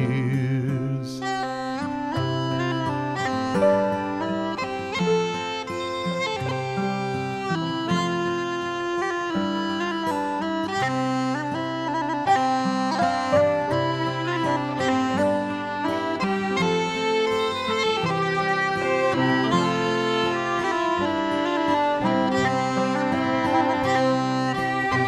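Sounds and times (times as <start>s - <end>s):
uilleann pipes melody: 1.0s - 25.0s.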